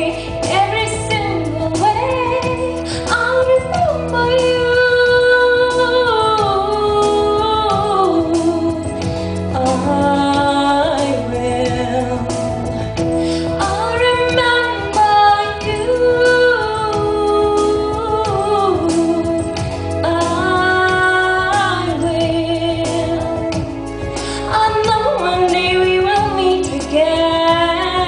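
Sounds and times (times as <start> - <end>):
instrumental backing music: 0.0 - 28.0
woman singing into microphone: 0.0 - 28.0.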